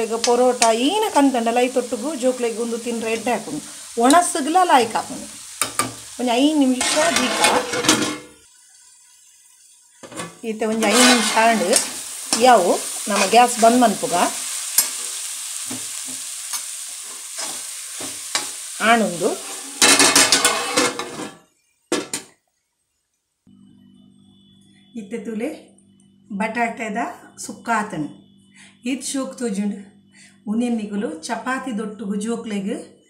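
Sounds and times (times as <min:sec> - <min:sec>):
faint steady sizzle: 0:00.0 - 0:33.0
spoon scraping a pan: 0:05.6 - 0:08.4, 0:10.0 - 0:21.5.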